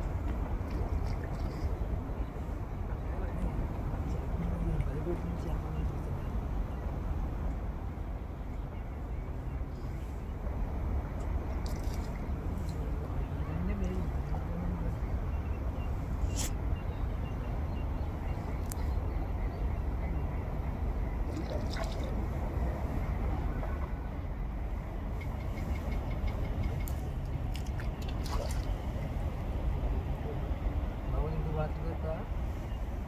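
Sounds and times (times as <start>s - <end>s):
low outdoor rumble: 0.0s - 33.0s.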